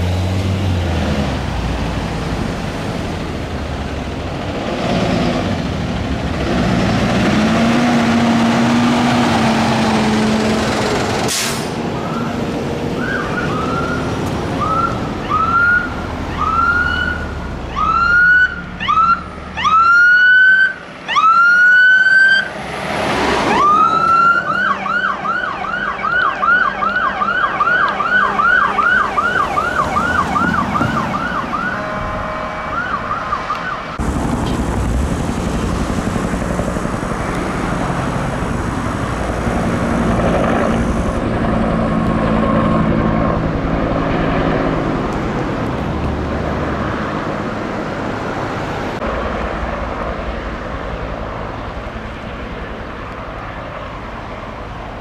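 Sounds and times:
diesel fire engines rumbling: 0.0 - 55.0
electronic siren wailing: 13.0 - 22.5, 23.4 - 34.0.

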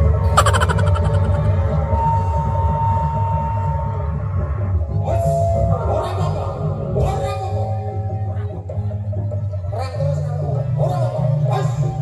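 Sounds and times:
held tone: 0.3 - 1.6
gamelan music: 0.4 - 1.6.

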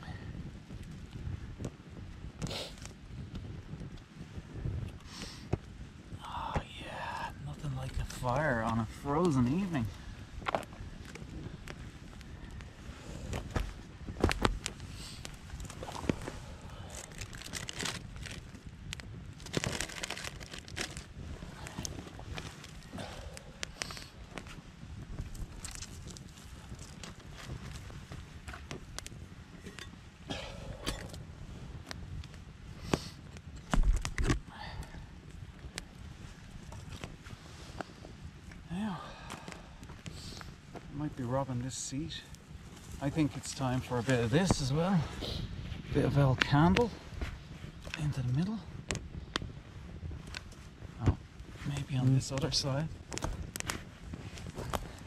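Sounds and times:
campfire crackling and popping: 0.0 - 55.0.

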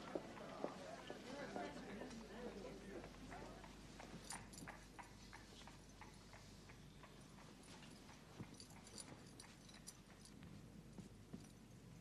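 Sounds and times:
faint irregular clicks: 3.2 - 11.6.

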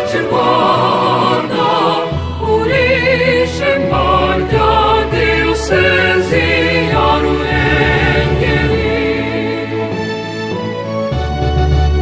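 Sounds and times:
choir singing with vibrato: 0.0 - 10.4.

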